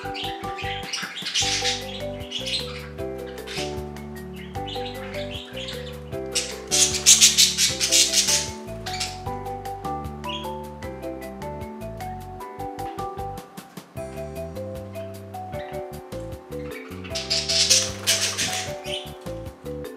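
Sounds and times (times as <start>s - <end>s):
budgerigars chirping: 0.0s - 10.8s, 15.0s - 19.4s
light instrumental tune: 0.0s - 19.9s.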